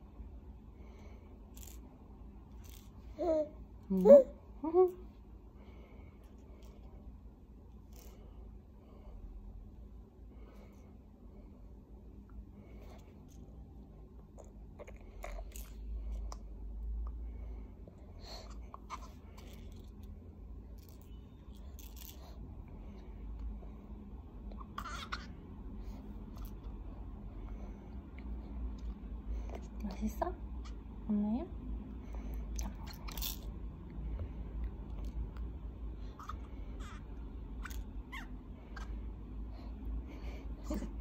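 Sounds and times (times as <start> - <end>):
baby gnawing a teether: 14.4 - 16.4, 32.6 - 33.5.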